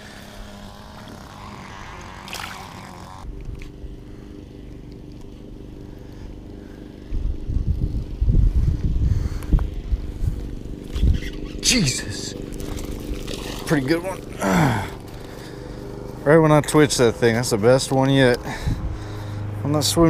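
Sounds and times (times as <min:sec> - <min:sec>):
low motor hum: 0:00.0 - 0:20.0
wind rumbling on microphone: 0:07.0 - 0:11.6.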